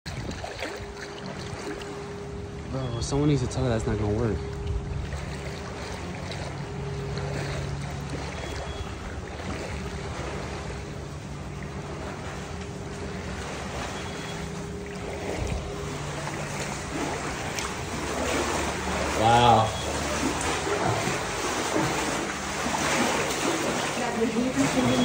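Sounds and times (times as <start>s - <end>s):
floodwater sloshing around legs: 0.0s - 25.0s
faint low hum: 0.1s - 25.0s.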